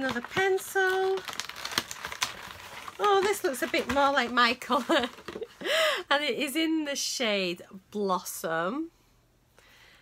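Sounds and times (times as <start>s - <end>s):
plastic wrap crinkling and tearing: 0.0s - 5.5s.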